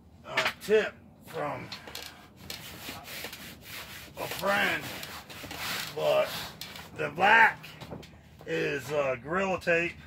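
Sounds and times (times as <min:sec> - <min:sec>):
hands rubbing tape on tarp: 0:02.0 - 0:07.0.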